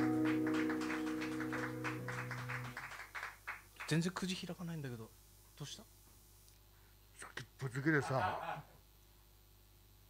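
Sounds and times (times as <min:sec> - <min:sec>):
acoustic guitar chord ringing: 0:00.0 - 0:02.7
light clapping: 0:00.0 - 0:04.0.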